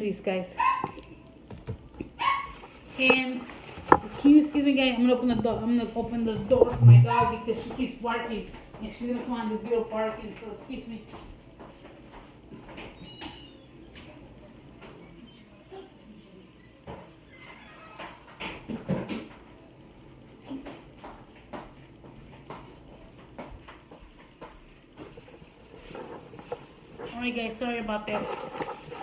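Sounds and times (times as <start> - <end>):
distant dog barking: 0.6 - 1.2, 2.1 - 2.7.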